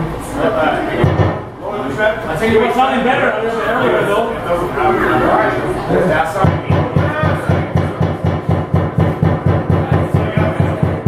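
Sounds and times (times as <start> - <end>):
bass drum thumping: 6.4 - 11.0
drum kit playing: 6.4 - 11.0.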